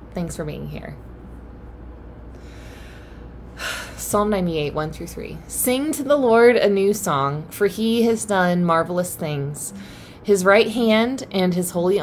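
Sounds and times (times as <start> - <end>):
steady low hum: 0.0 - 12.0
woman breathing in: 2.3 - 4.0, 9.8 - 10.2.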